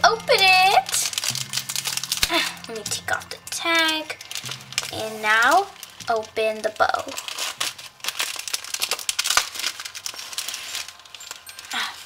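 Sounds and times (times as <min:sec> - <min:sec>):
foil gift wrap crinkling: 0:00.0 - 0:12.0.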